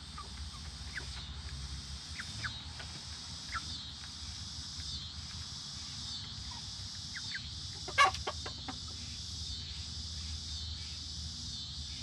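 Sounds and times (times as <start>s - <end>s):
chicken calls: 0.0s - 1.5s, 2.1s - 9.3s
chick peeps: 0.0s - 9.4s.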